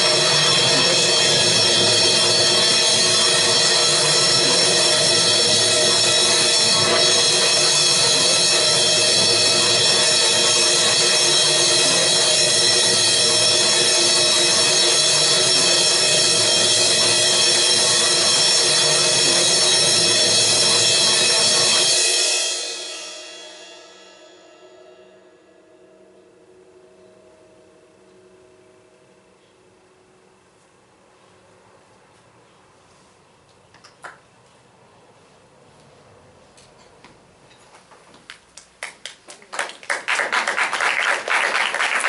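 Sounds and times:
cymbal roll with sticks: 0.0s - 30.2s
faint hum of tones: 24.2s - 33.8s.

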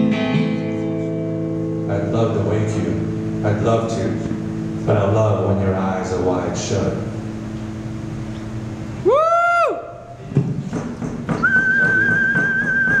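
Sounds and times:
audience member whooping: 9.0s - 10.1s, 11.4s - 13.0s
scattered clapping: 11.0s - 13.0s
long high whistle: 11.4s - 13.0s.

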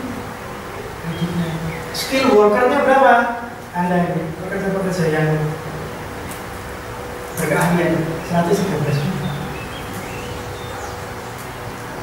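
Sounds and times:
faint hum: 0.0s - 12.0s
person speaking: 1.0s - 5.7s, 7.4s - 9.6s.

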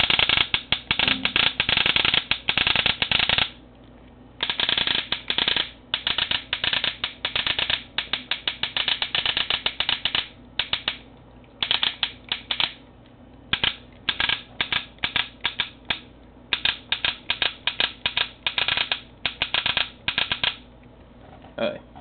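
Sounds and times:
paintball marker rapid firing: 0.0s - 3.6s, 4.4s - 11.0s, 11.6s - 12.8s, 13.6s - 20.6s.

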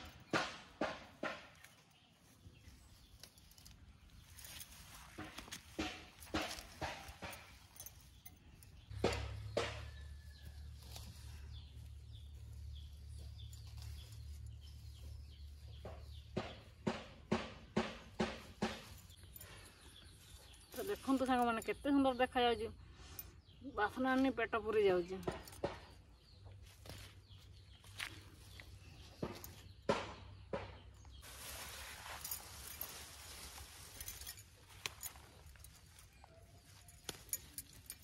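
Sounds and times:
woman speaking: 20.8s - 22.8s, 23.6s - 25.4s.

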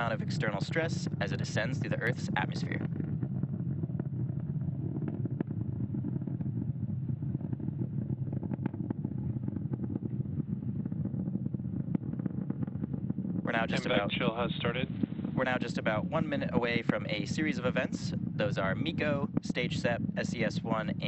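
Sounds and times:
faint crackles: 0.0s - 21.0s
rocket engines rumbling: 0.0s - 21.0s.

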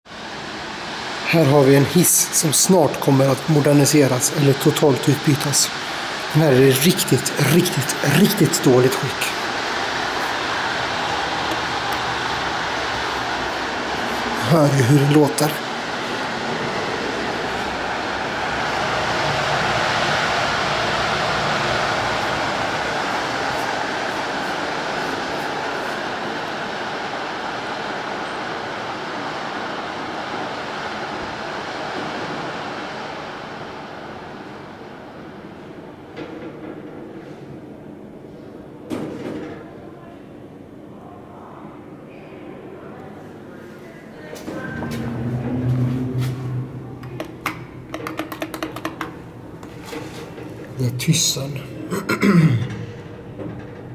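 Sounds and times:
inclined elevator rumbling: 5.7s - 29.7s, 44.0s - 53.9s
knocks: 47.0s - 49.2s.

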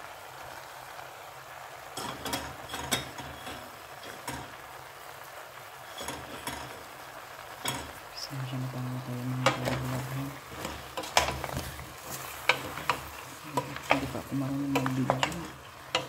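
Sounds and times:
wooden spoon scraping a steel pot: 5.9s - 6.8s, 9.4s - 16.0s.

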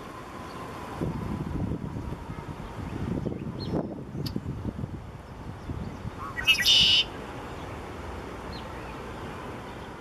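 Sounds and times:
blackbird singing: 5.6s - 7.1s.

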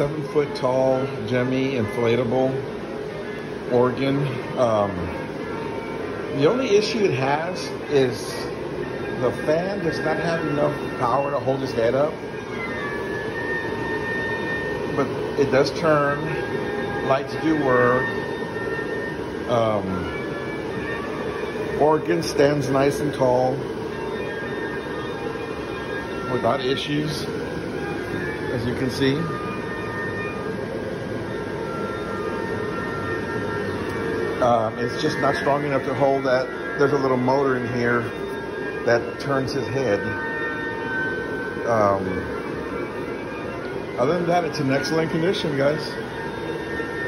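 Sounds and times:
blower fan running: 0.0s - 47.0s
faint high whine: 0.0s - 47.0s
faint steady tones: 0.0s - 47.0s
person talking: 34.4s - 38.2s.

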